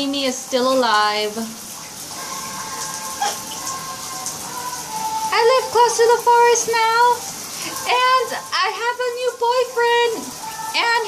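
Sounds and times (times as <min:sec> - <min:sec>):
water dripping in a bathtub: 0:00.0 - 0:11.0
steady hiss: 0:00.8 - 0:11.0.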